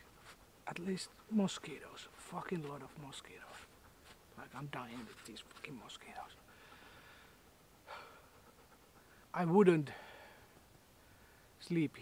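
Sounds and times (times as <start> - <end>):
faint breath: 6.4 - 11.6.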